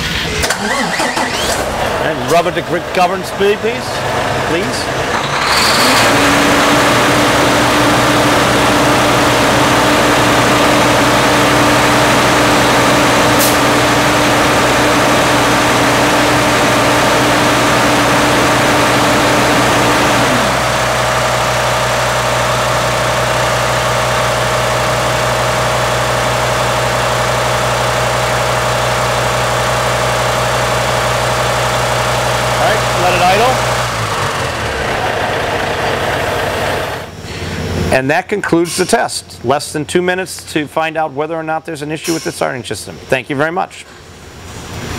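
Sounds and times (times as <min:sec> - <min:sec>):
diesel truck engine idling: 0:00.0 - 0:37.9.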